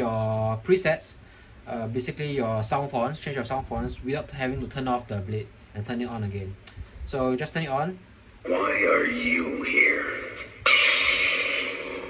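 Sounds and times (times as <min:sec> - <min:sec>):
lightsaber buzzing hum: 0:08.4 - 0:12.0
lightsaber ignition: 0:08.8 - 0:12.0.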